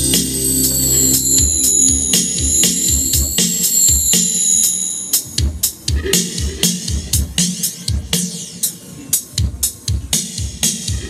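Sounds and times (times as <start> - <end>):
drum hits: 0.0 - 4.4, 5.2 - 8.3.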